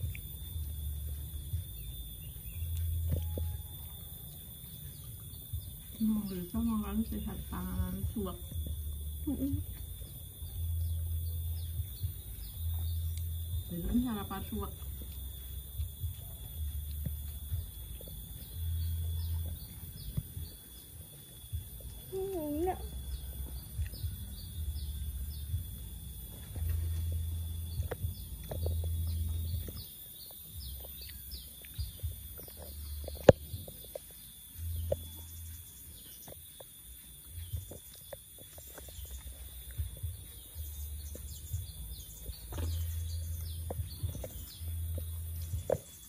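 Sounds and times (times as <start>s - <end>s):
low rumble on microphone: 0.0s - 46.0s
small birds chirping: 0.0s - 46.0s
thin steady high tone: 0.0s - 46.0s.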